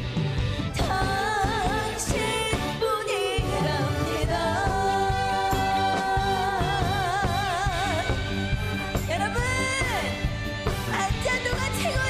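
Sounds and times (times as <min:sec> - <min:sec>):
live band with steady beat: 0:00.0 - 0:12.0.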